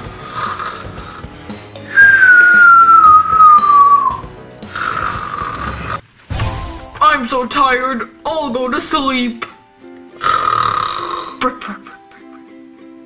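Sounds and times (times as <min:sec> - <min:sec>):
cartoon snoring: 0:00.0 - 0:01.4, 0:04.6 - 0:06.0, 0:10.2 - 0:11.6
soft background music: 0:00.0 - 0:13.0.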